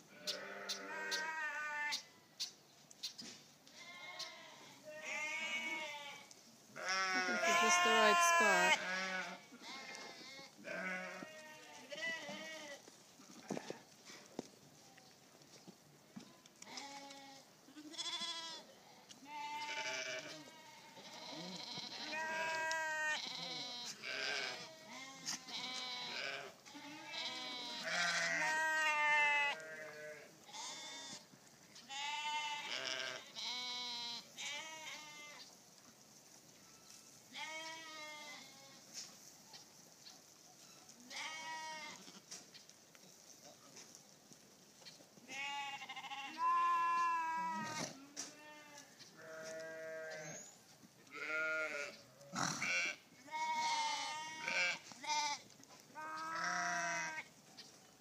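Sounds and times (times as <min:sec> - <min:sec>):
sheep bleating: 0:00.1 - 0:02.1, 0:03.8 - 0:12.8, 0:16.6 - 0:31.2, 0:31.9 - 0:35.5, 0:37.3 - 0:38.8, 0:41.1 - 0:42.3, 0:45.2 - 0:50.4, 0:51.1 - 0:57.3.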